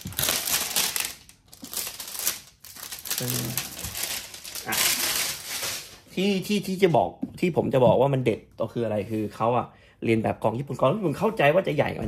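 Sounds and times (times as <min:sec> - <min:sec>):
plastic shrink-wrap crinkling: 0:00.0 - 0:06.2.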